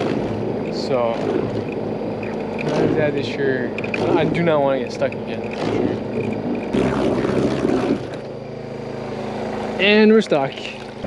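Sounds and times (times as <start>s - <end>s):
boat engine humming: 0.0s - 11.0s.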